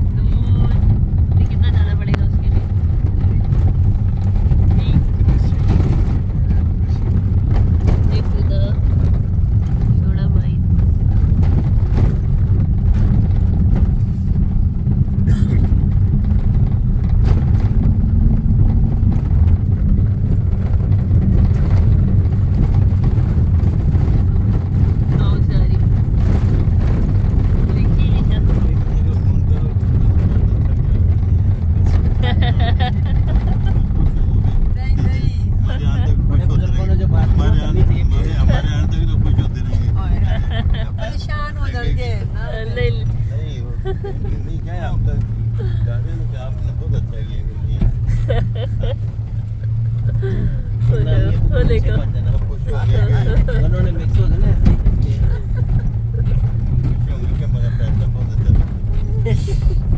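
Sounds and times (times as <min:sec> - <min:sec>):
car driving on dirt road: 0:00.0 - 0:59.9.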